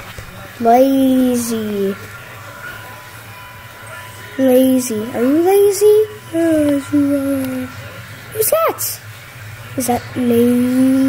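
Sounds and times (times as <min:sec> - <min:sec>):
low background hum: 0:00.0 - 0:11.0
faint thin high tone: 0:00.8 - 0:09.0.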